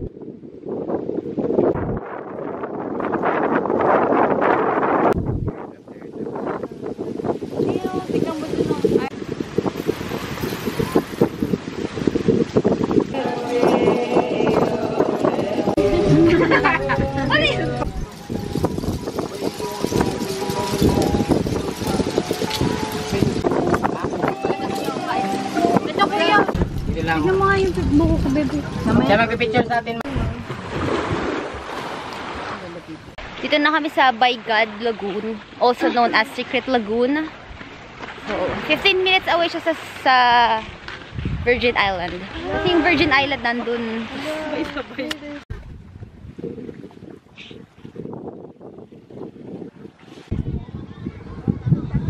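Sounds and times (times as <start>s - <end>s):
wind gusts on microphone: 0.0s - 52.0s
steady outdoor noise: 4.9s - 46.0s
people chatting indistinctly: 5.5s - 9.2s, 13.1s - 30.6s, 32.6s - 37.4s, 38.2s - 40.7s, 41.4s - 45.4s.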